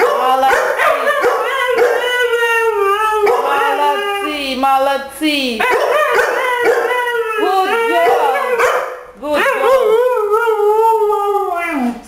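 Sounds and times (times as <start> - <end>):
dogs howling: 0.0 - 4.5, 5.6 - 12.0.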